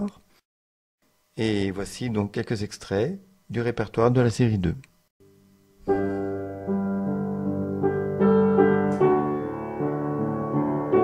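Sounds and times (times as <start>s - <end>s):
slow piano piece: 5.8s - 11.0s.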